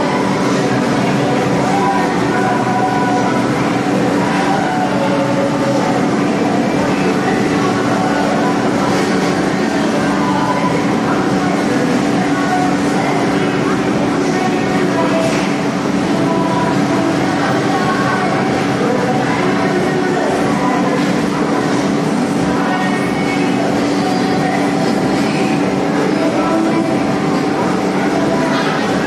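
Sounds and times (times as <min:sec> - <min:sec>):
faint voices: 0:00.0 - 0:29.0
loud mechanical hum: 0:00.0 - 0:29.0.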